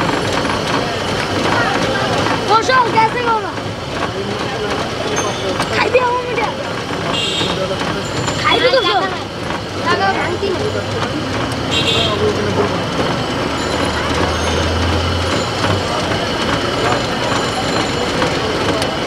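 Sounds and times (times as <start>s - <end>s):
passing traffic: 0.0s - 19.0s
people's voices: 0.0s - 19.0s.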